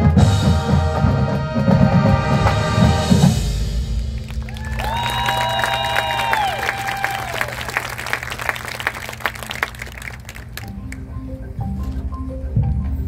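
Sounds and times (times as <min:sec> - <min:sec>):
marching band holding a chord: 0:00.0 - 0:10.9
crowd applauding: 0:04.2 - 0:11.0.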